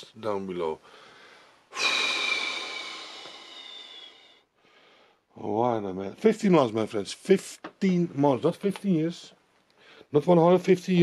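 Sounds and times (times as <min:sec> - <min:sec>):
person exhaling breathily: 0:00.9 - 0:05.2.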